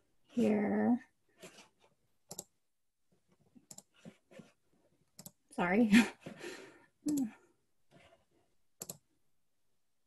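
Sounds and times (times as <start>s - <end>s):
computer mouse clicks: 2.2s - 2.5s, 3.6s - 4.1s, 5.1s - 5.4s, 8.8s - 9.1s.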